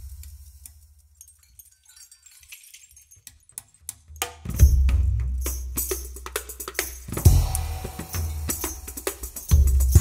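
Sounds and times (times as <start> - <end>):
light metallic clicks and jingles: 0.2 - 7.1.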